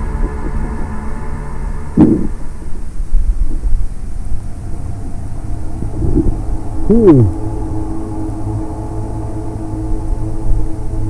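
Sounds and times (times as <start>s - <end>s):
low underwater rumble: 0.0s - 8.4s
muffled vocal hums through snorkel: 2.0s - 2.5s, 5.8s - 7.4s.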